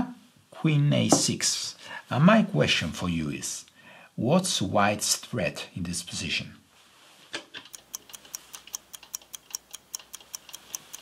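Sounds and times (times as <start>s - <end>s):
clock ticking: 7.7s - 11.0s.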